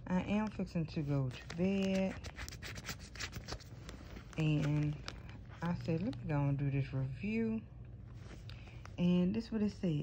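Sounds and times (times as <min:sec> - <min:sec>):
fingers scratching plastic package: 0:01.4 - 0:05.4.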